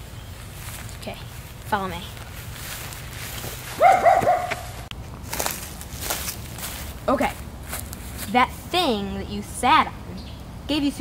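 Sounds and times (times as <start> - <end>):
soft scuffs: 0.4 - 8.4
small dog whining yelp: 3.8 - 4.7.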